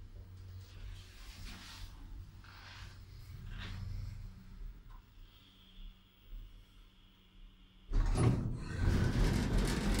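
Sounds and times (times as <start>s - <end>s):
faint steady hum: 0.0s - 8.9s
elevator doors sliding: 7.9s - 10.0s.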